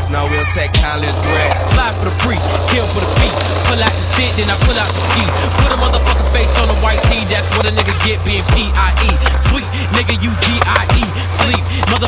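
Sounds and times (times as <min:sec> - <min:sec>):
rapping over a beat: 0:00.0 - 0:12.0
skateboard wheels rolling on concrete: 0:00.0 - 0:12.0.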